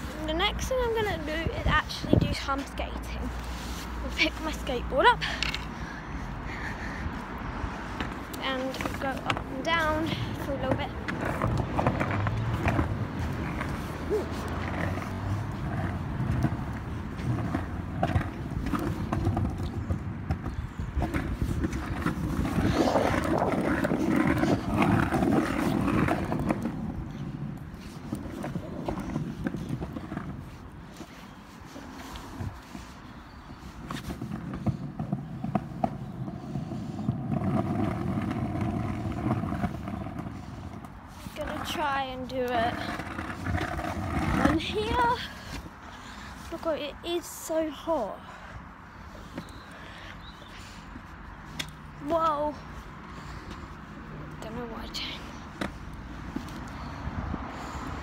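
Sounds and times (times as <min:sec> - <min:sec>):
skateboard wheels rolling on pavement: 0:00.0 - 0:58.0.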